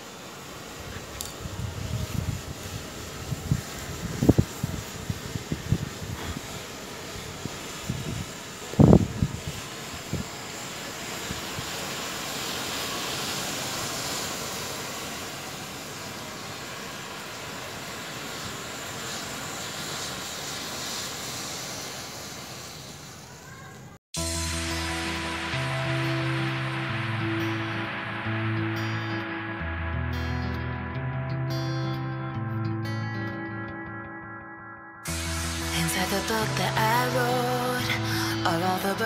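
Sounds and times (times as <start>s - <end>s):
matches burning with hiss: 0.0s - 28.3s, 35.1s - 39.0s.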